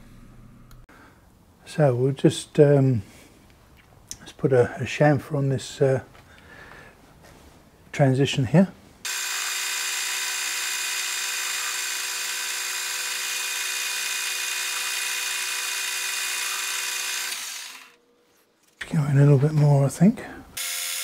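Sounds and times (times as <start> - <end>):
metal lathe whining: 9.1 - 18.0.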